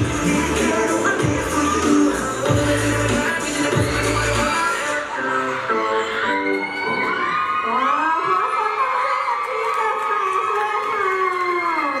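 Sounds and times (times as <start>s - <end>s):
audience cheering and screaming: 0.0s - 12.0s
pop dance track: 0.0s - 12.0s.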